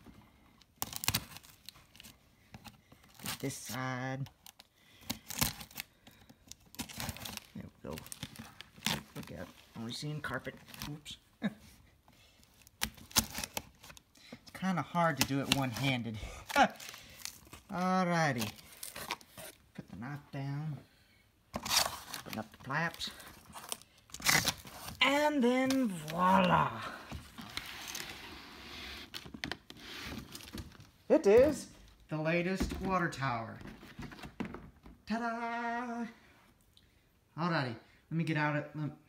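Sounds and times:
cardboard scraping rustle: 27.2s - 30.8s.

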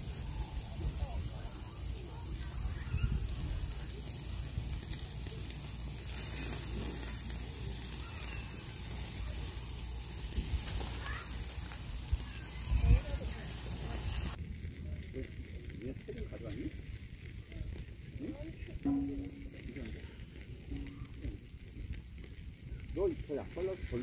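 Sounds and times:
meat sizzling on a grill: 0.0s - 24.0s
low rumble: 18.7s - 23.0s.

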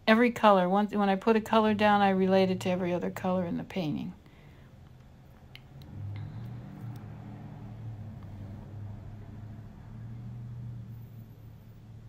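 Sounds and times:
low machine hum: 4.2s - 12.0s.

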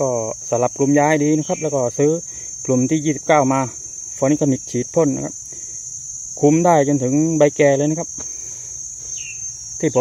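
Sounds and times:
faint chirp: 0.0s - 2.8s, 8.2s - 10.0s
crickets trilling: 0.0s - 10.0s.

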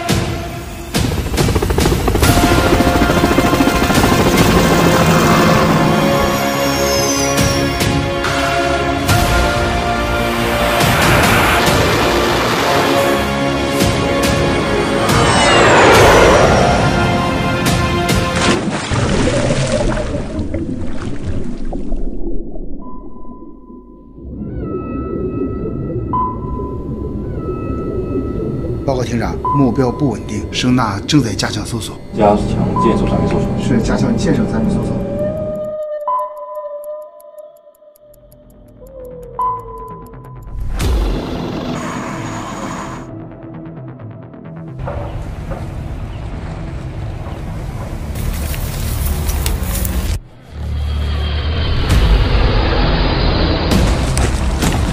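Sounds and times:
electronic sonar tones: 22.3s - 43.1s.

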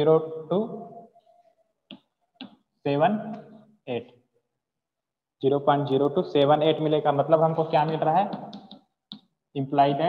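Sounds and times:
chalk tapping on chalkboard: 7.8s - 9.3s.

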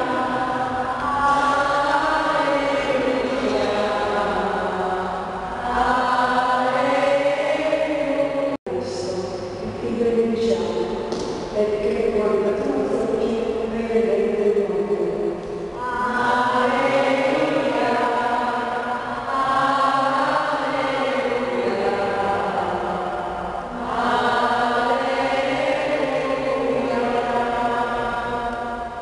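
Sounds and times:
voices singing a slow chant: 0.0s - 11.4s, 13.1s - 29.0s.

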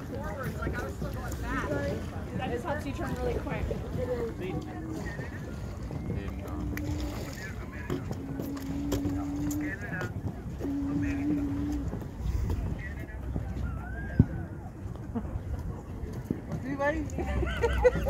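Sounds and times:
wind rumble on microphone: 0.0s - 18.0s
people calling out: 4.5s - 9.8s.

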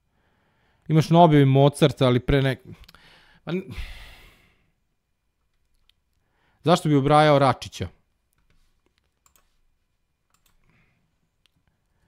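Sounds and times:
man sighing: 2.9s - 4.6s.

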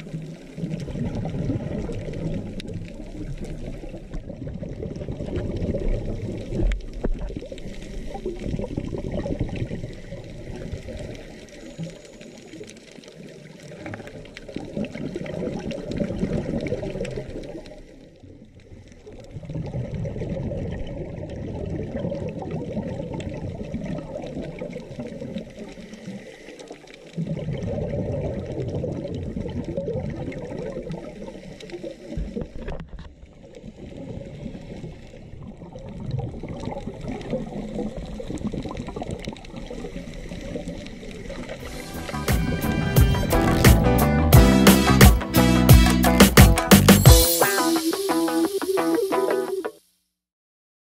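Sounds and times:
underwater bubbling and gurgling: 0.0s - 43.6s.

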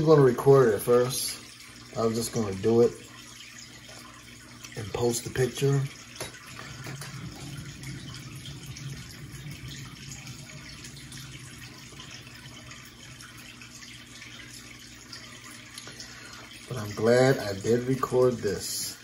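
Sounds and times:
water trickling: 0.0s - 19.0s
low hum: 6.2s - 13.8s.

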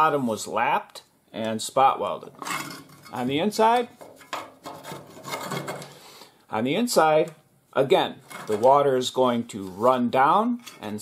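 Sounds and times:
steel panel scraping on steel floor: 4.0s - 6.0s.

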